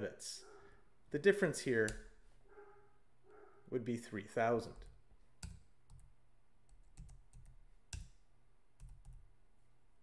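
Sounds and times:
computer keyboard and mouse clicks: 4.8 - 8.2, 8.8 - 9.3.

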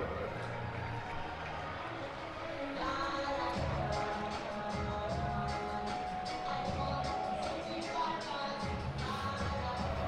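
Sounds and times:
ballpark crowd noise: 0.0 - 10.0.

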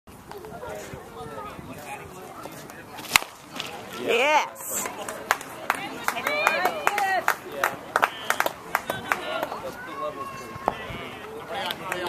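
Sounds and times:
bat cracking ball: 3.0 - 3.7.

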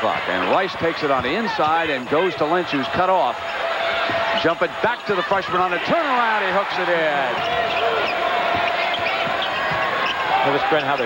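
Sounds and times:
arena crowd noise: 0.0 - 11.0
basketball dribbling on hardwood: 7.3 - 11.0.

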